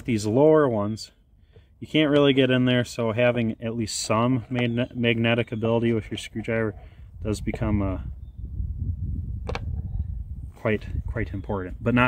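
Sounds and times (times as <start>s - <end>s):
wind rumble on microphone: 5.8s - 12.0s.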